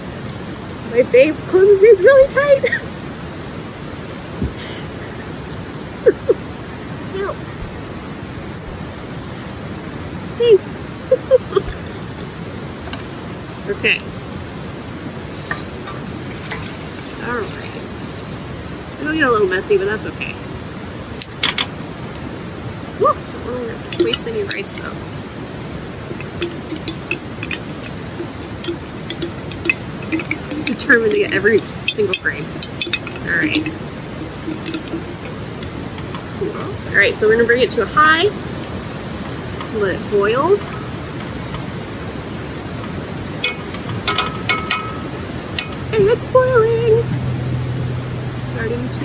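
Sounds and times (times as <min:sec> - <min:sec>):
river rushing: 0:00.0 - 0:49.0.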